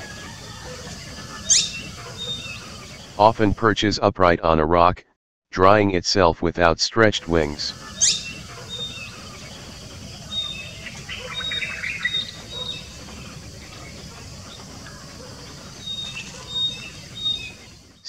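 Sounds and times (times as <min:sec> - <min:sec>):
small birds chirping: 0:00.0 - 0:03.2, 0:07.3 - 0:18.0
low outdoor background noise: 0:00.0 - 0:04.1, 0:06.1 - 0:18.0.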